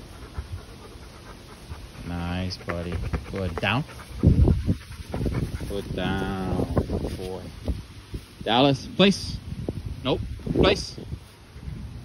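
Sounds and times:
dog panting: 0:00.0 - 0:07.0.

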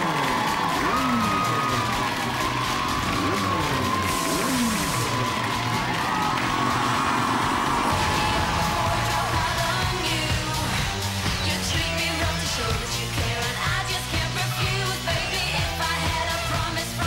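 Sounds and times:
music playing: 0:00.0 - 0:17.0
studio audience cheering: 0:00.0 - 0:17.0.

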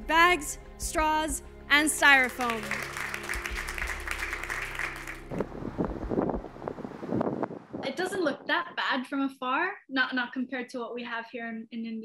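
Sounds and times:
music: 0:00.0 - 0:06.8
applause: 0:02.1 - 0:05.5
wind buffeting microphone: 0:05.3 - 0:08.8.

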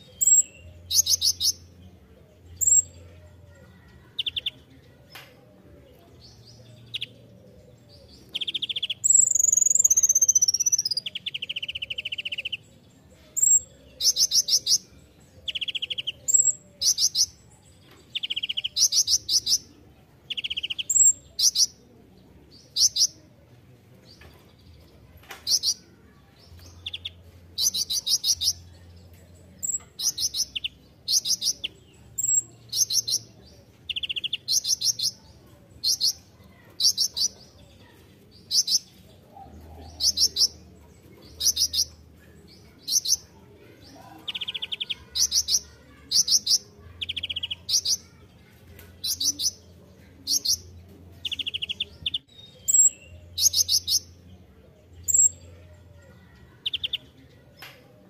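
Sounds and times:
bird high-pitched trills: 0:08.4 - 0:12.6.

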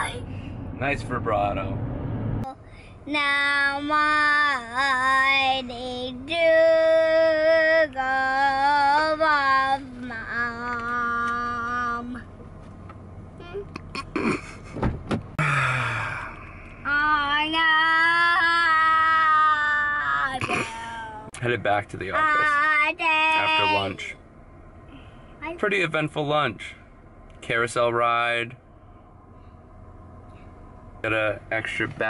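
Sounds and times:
child singing wordless notes: 0:02.5 - 0:12.2.

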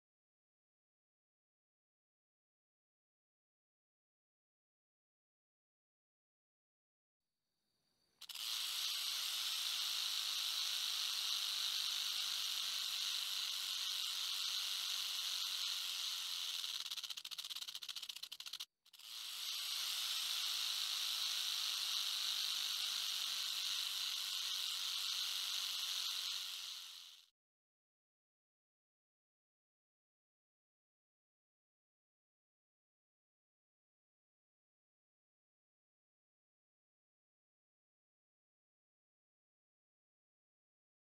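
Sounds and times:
loud steady hissing: 0:08.2 - 0:17.2, 0:19.3 - 0:27.2.

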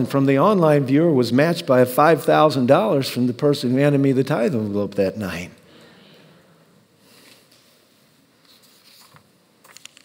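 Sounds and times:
paper pages rustling: 0:08.4 - 0:10.0.

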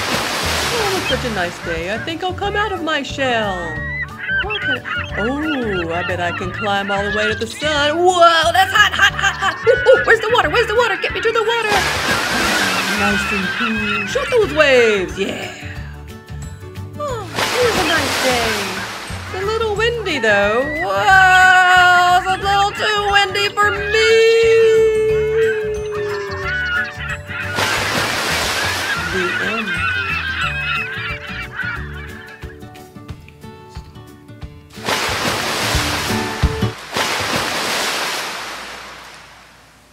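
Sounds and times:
waves washing in: 0:00.0 - 0:02.4, 0:10.9 - 0:14.6, 0:17.2 - 0:20.4, 0:27.4 - 0:30.2, 0:34.7 - 0:39.9
honking gull-like bird calls: 0:00.5 - 0:15.1, 0:17.4 - 0:32.6.

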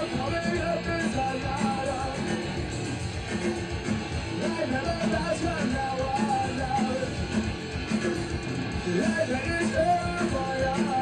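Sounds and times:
punk rock band playing live: 0:00.0 - 0:11.0.

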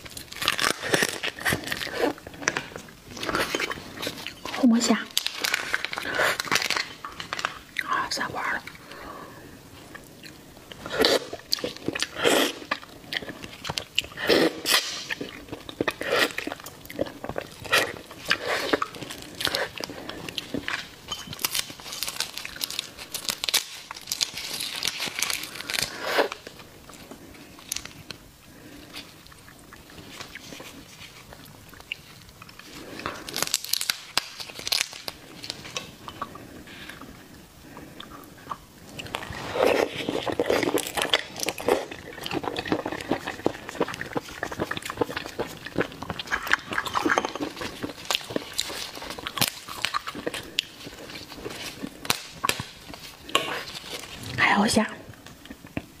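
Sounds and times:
prawn shell crackling: 0:10.9 - 0:29.1, 0:29.8 - 0:37.0, 0:38.9 - 0:54.3
wet biting and chewing: 0:37.9 - 0:54.4.

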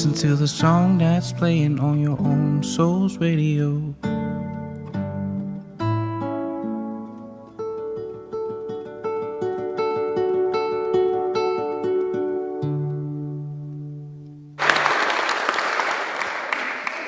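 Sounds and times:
acoustic guitar picking: 0:00.0 - 0:14.6.

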